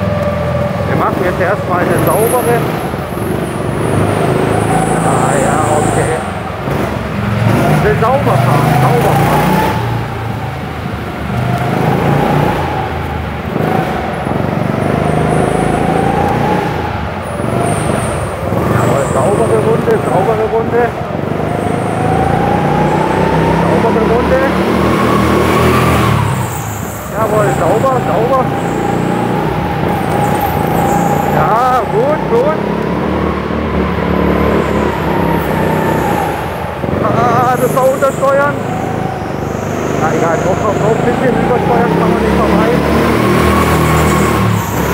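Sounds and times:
tyre squeals: 0.0 - 10.5, 11.7 - 44.9
go-kart engine revving: 0.0 - 44.9.

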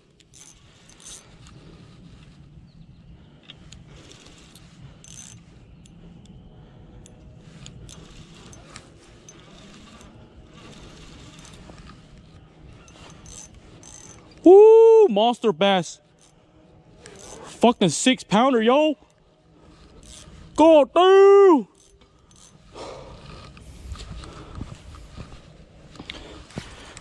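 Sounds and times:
fishing reel winding: 0.2 - 2.4, 3.8 - 6.0, 7.0 - 12.3, 12.9 - 14.4, 16.2 - 16.4, 17.0 - 17.6, 19.1 - 20.6, 21.7 - 22.6
man shouting: 14.5 - 15.9, 20.6 - 21.7.

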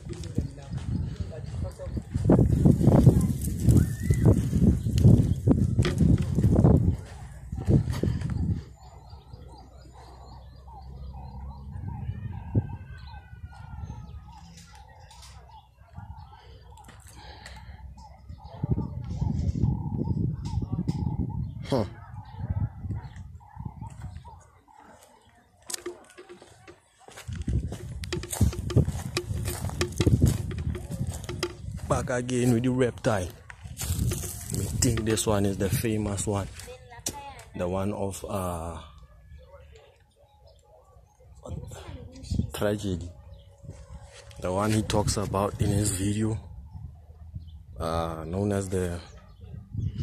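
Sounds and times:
footsteps crunching on dry leaves: 0.0 - 8.3, 25.7 - 35.6
knocks on phone microphone: 28.1 - 31.7.

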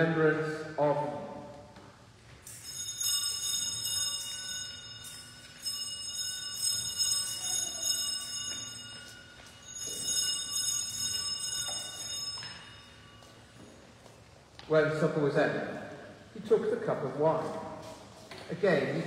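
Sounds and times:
bells ringing: 2.3 - 14.2.

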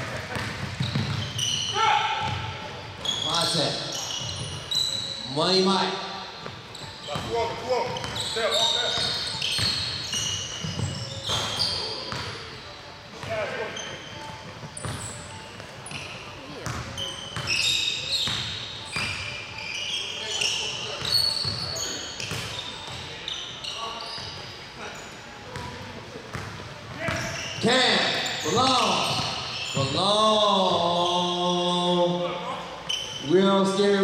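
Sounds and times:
sneakers squeaking: 0.0 - 34.0
basketball bouncing on wooden floor: 0.3 - 1.3.

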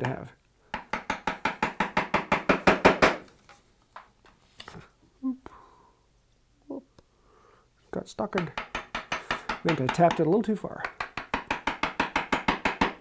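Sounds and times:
mallet tapping chisel into wood: 0.0 - 3.2, 8.3 - 13.0.

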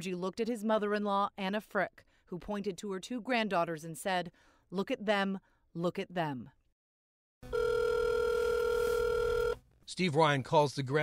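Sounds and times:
telephone ringback tone: 7.5 - 9.6.

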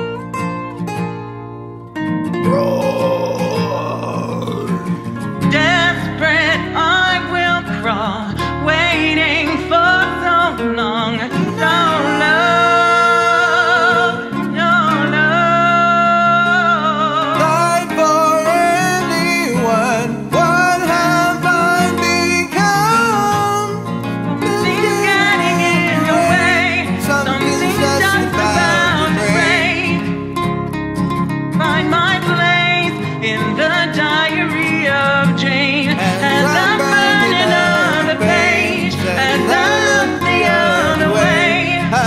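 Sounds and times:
strummed acoustic guitar: 0.0 - 42.0
person singing karaoke: 2.4 - 30.3, 31.6 - 42.0.

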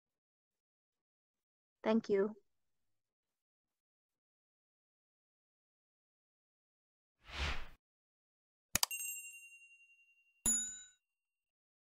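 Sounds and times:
bell chime: 8.8 - 11.0
high ding: 8.8 - 11.0.

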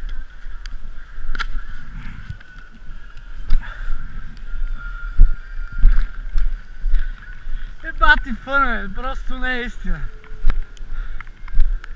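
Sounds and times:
camera handling rumble: 1.3 - 3.6.

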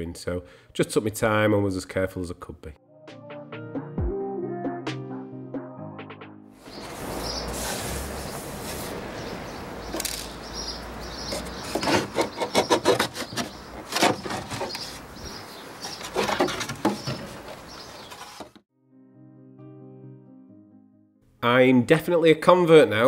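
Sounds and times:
wood rubbing on wood: 6.7 - 18.6
sharp wooden knocks: 11.3 - 14.8, 15.8 - 18.6.

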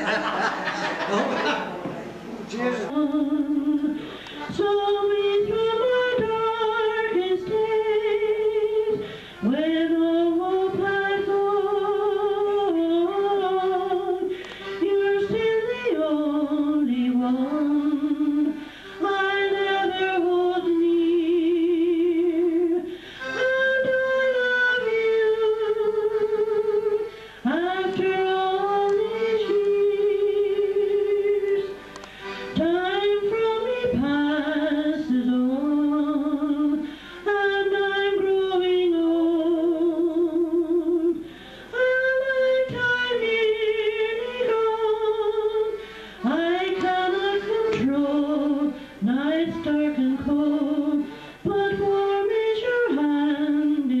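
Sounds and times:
elderly woman singing unaccompanied: 2.9 - 31.7, 32.5 - 54.0
singer breathing: 4.0 - 4.5, 9.0 - 9.4, 14.3 - 14.8, 18.6 - 19.0, 22.9 - 23.4, 27.1 - 27.5, 31.8 - 32.6, 36.8 - 37.2, 41.2 - 41.8, 45.8 - 46.3, 48.8 - 49.0, 51.0 - 51.4.

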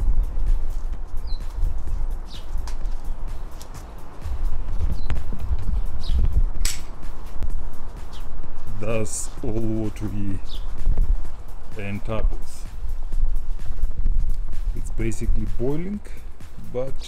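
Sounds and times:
wind buffeting microphone: 0.0 - 3.5, 4.2 - 16.7.

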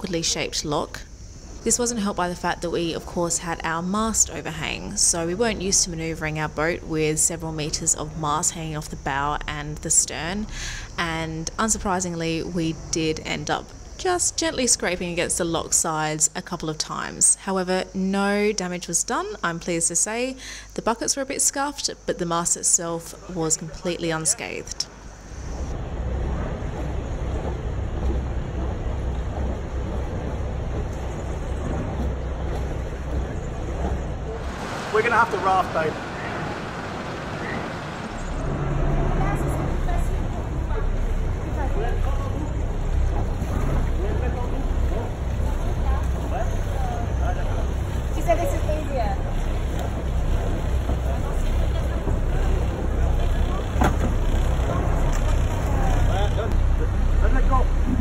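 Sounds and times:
boat engine running: 0.0 - 20.5, 22.2 - 58.0
wind buffeting microphone: 25.4 - 58.0.

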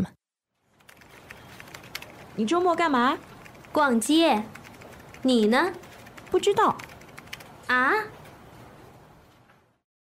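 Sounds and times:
woman speaking: 2.3 - 7.0, 7.6 - 8.2.

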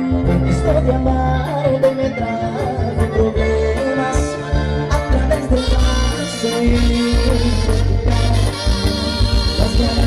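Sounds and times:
bass: 0.0 - 10.0
keyboard melody: 0.0 - 10.0.

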